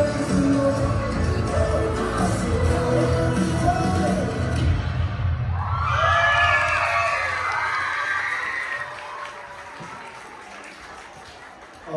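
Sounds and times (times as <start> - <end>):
dance music: 0.0 - 5.6
audience cheering and shouting: 3.4 - 10.3.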